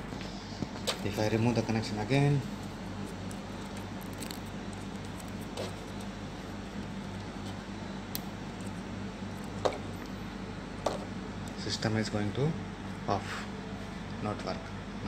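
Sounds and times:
computer fans humming: 0:00.0 - 0:15.0.

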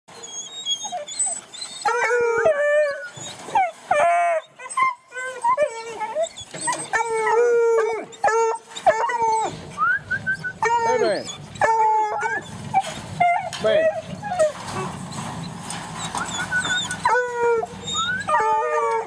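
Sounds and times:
puppies baying and howling: 0:00.1 - 0:19.0.

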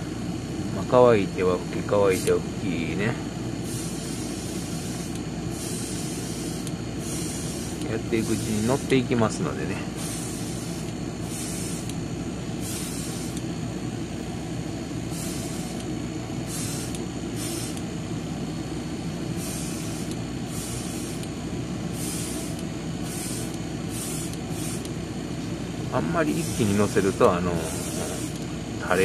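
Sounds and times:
steady low hum: 0:00.0 - 0:29.0
airbrush spraying hiss: 0:03.6 - 0:09.2, 0:10.0 - 0:13.5, 0:15.1 - 0:17.9, 0:19.3 - 0:25.0, 0:26.2 - 0:28.4.

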